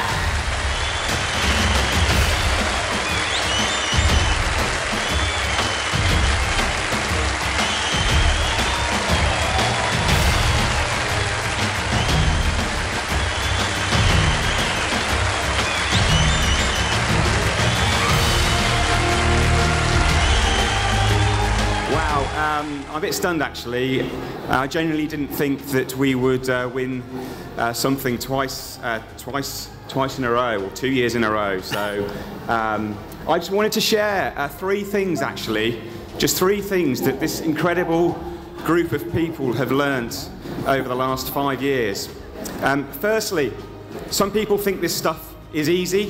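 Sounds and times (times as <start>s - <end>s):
music with heavy pulsing bass: 0.0s - 22.9s
audience applause: 0.0s - 24.3s.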